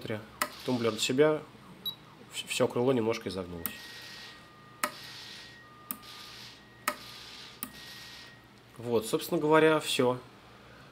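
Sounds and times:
faint high servo whine: 3.4s - 8.6s.

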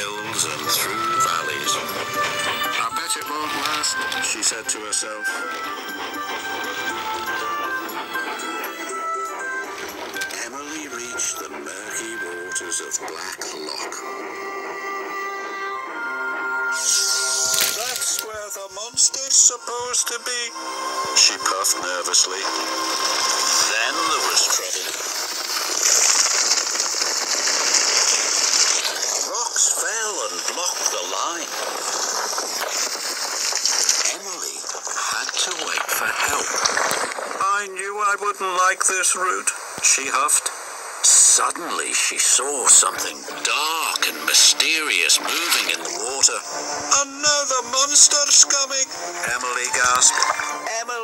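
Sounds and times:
instrumental background music: 0.0s - 27.8s, 42.6s - 51.0s.

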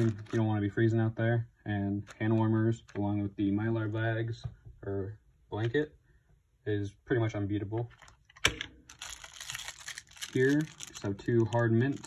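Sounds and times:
plastic wrapper crinkling: 0.0s - 0.5s, 8.9s - 12.0s.

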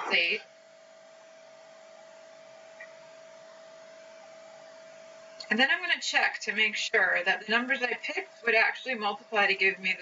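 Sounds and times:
faint mid-pitched hum: 0.0s - 10.0s.

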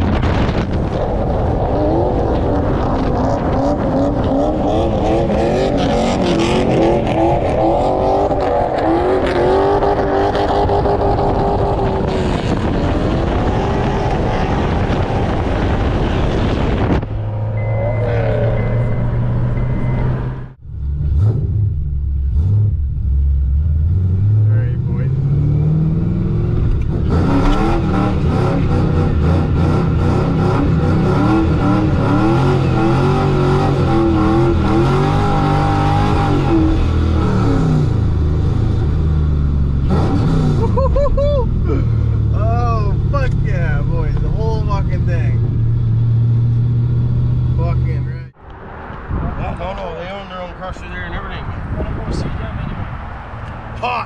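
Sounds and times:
car engine revving: 0.0s - 53.9s
tire squeal: 17.2s - 20.5s.

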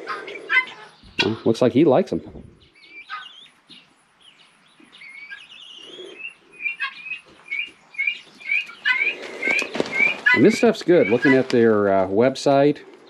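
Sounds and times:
birds chirping: 0.0s - 13.0s.

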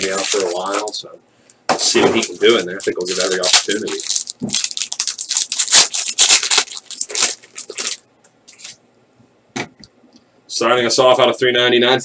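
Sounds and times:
wrapper tearing and crinkling: 0.0s - 1.0s, 1.8s - 8.8s.

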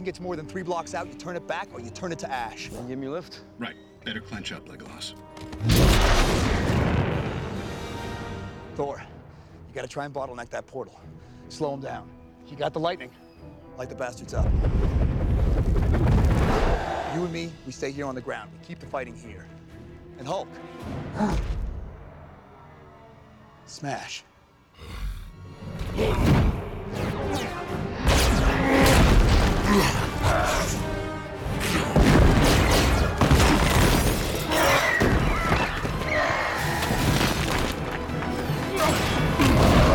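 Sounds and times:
film score music: 0.0s - 39.9s
shattering debris: 32.0s - 36.2s, 36.8s - 39.9s.

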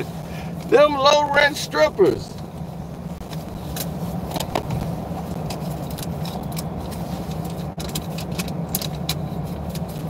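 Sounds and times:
car idling: 0.0s - 10.0s
clicks and rustles of handling: 3.2s - 10.0s.

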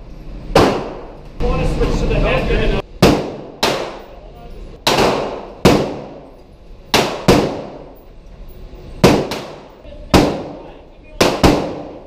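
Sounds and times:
pistol shots echoing indoors: 0.6s - 1.2s, 3.0s - 4.2s, 4.8s - 8.0s, 9.0s - 12.0s.

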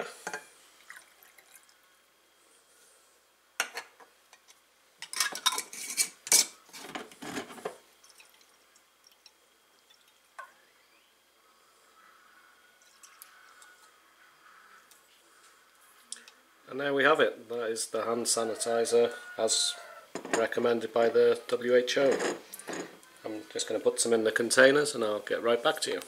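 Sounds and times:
water trickling into glass jar: 0.8s - 1.8s, 8.0s - 10.6s, 12.8s - 13.8s
metal lid clinking and scraping: 5.0s - 7.8s, 22.0s - 23.0s.

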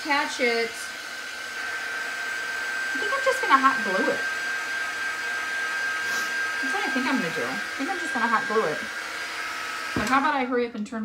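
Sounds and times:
heat tool blowing with high whine: 0.0s - 10.7s.

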